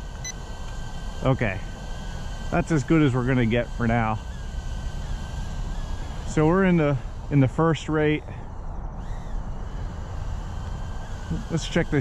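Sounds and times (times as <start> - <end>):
drone motors whining: 0.0 - 12.0.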